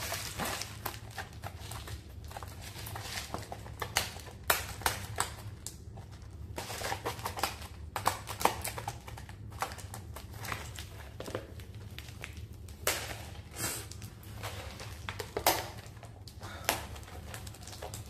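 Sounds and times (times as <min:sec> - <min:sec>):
plastic shrink-wrap crinkling: 0:00.0 - 0:18.0.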